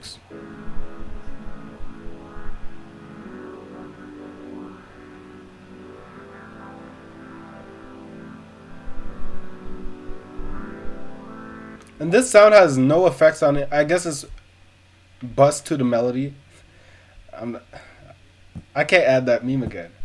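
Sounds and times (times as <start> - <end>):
sustained synth string chords: 0.0 - 12.9.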